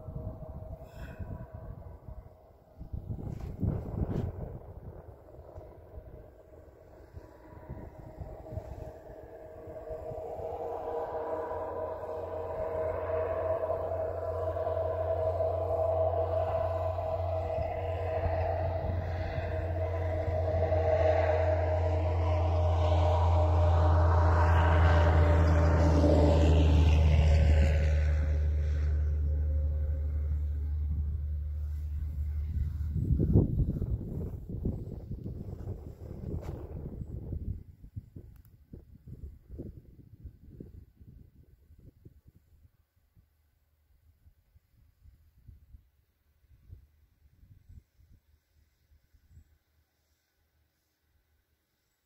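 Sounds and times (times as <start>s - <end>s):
vehicle engine passing by: 0.0s - 37.2s.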